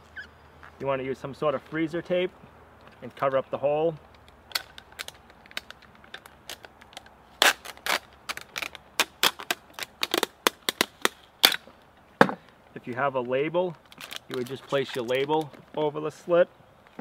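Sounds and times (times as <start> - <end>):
tape being peeled and torn: 4.1 - 12.0, 13.8 - 15.7.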